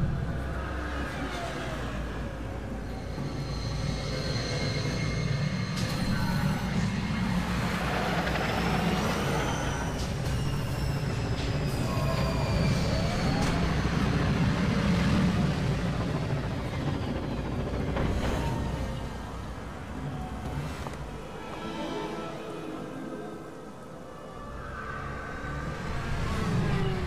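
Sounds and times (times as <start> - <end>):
steady low rumble: 0.0 - 1.1.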